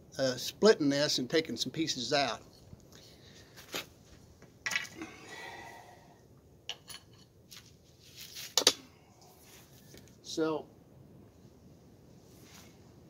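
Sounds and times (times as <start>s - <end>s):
cane rustling: 7.5s - 10.1s.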